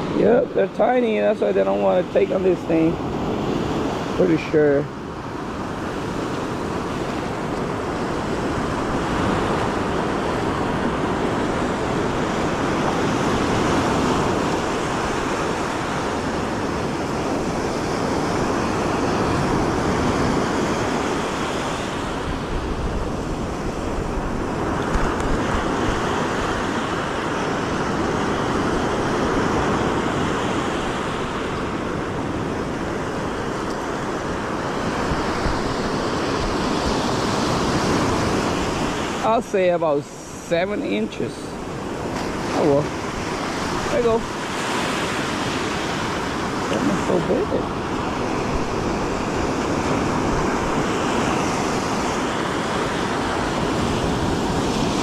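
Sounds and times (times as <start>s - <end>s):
ocean surf breaking on beach: 0.0s - 55.0s.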